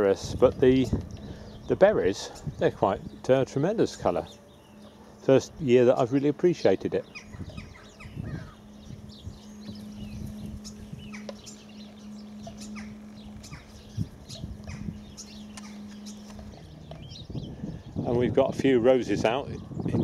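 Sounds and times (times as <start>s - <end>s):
birds chirping: 0.0s - 20.0s
steady low hum: 0.0s - 20.0s.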